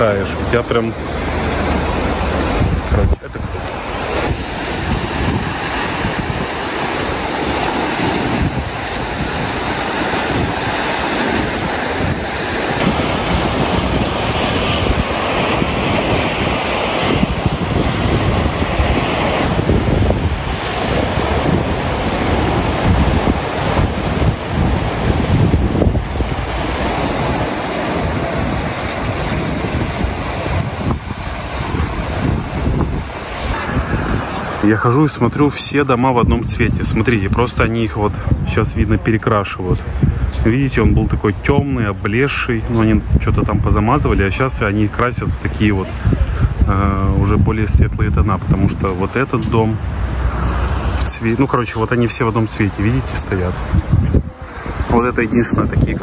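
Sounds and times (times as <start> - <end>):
waves breaking on rocky shore: 0.0 - 56.0
wind buffeting microphone: 0.0 - 56.0.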